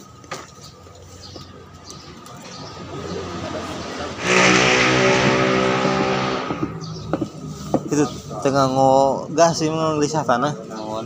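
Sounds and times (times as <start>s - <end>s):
vehicle passing by: 2.5s - 7.6s.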